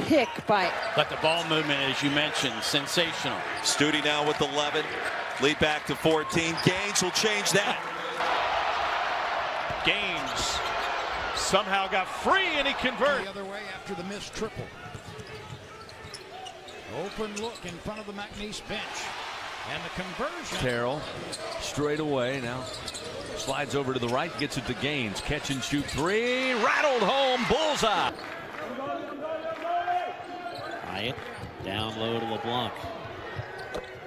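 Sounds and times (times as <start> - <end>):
shoes squeaking: 12.4 - 18.5, 21.0 - 26.6.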